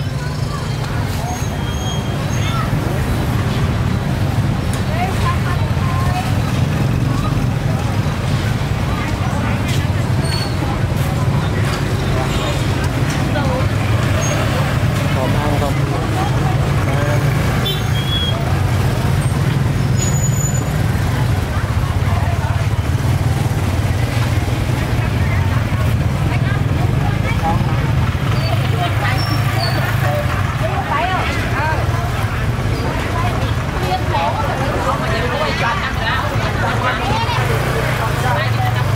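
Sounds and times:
motorbike engines running: 0.0s - 38.9s
people talking: 0.0s - 38.9s.

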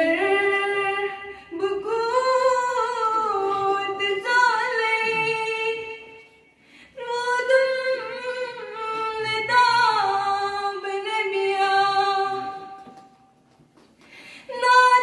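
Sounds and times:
woman singing unaccompanied: 0.0s - 6.2s, 7.0s - 12.9s, 14.5s - 15.0s.

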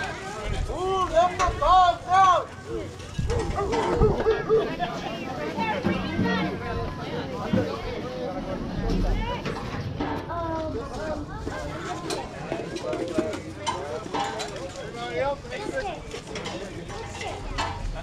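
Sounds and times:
children and adults talking: 0.0s - 18.0s.

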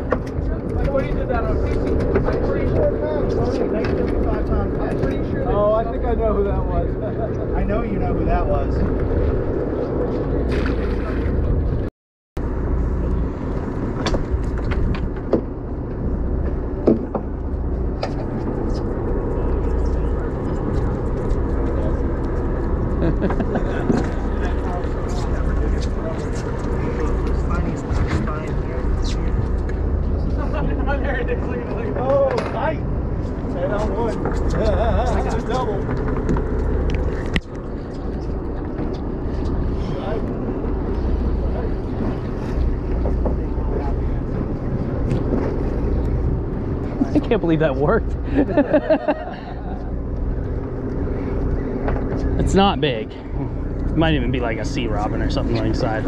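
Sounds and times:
boat engine running: 0.0s - 56.0s.

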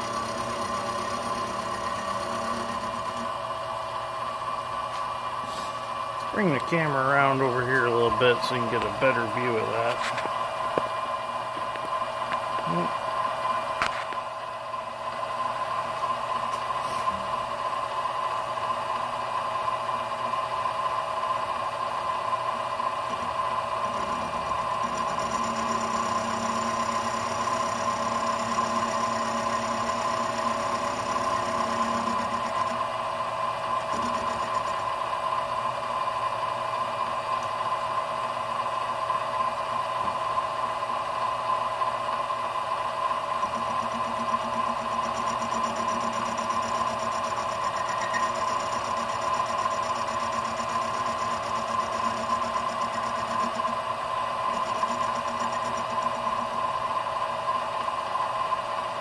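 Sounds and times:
milling machine whine: 0.0s - 59.0s
cutting rattle: 43.4s - 53.8s.

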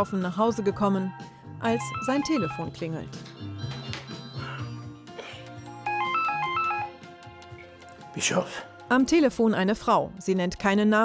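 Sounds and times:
soft background music: 0.0s - 11.0s
cordless phone ringing: 1.6s - 2.8s, 5.8s - 7.1s.

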